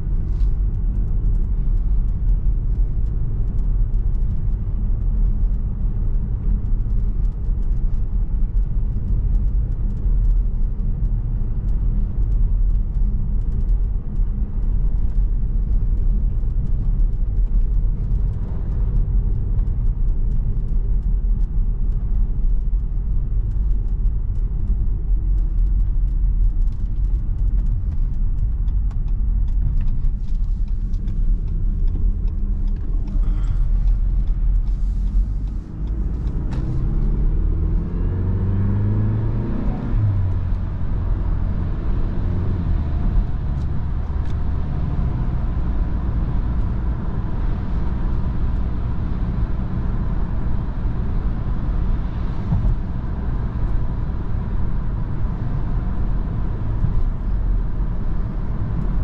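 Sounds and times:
car engine running: 0.0 - 59.0
tyre and road noise: 0.0 - 59.0.

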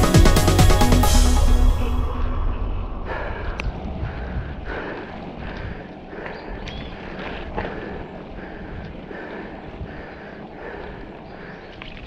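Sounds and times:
wind on microphone: 2.2 - 10.2.

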